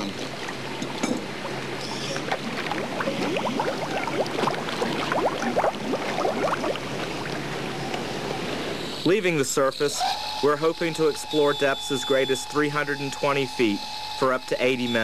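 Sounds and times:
bubbling gurgles: 0.0s - 8.1s
water sloshing and gurgling: 0.0s - 8.8s.

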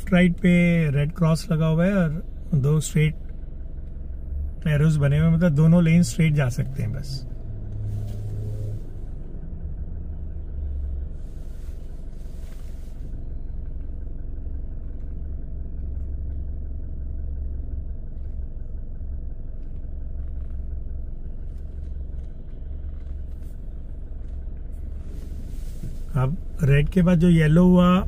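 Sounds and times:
car engine idling: 0.0s - 28.0s.

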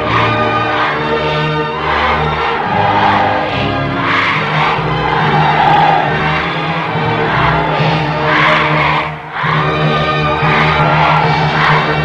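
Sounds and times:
military band brass and winds: 0.0s - 12.0s.

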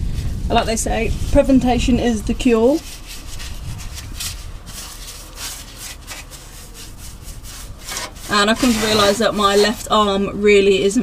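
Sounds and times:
paintbrush scrubbing on metal: 2.4s - 10.3s.

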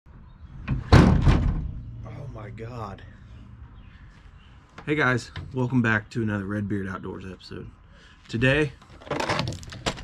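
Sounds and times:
tailgate banging open: 0.7s - 1.9s.

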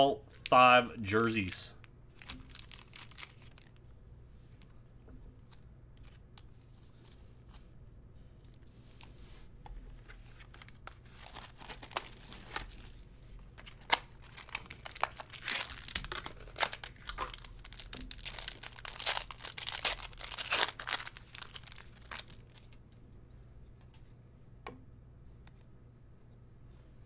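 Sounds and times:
plastic wrapper crinkling and tearing: 2.1s - 3.9s, 10.1s - 22.8s.

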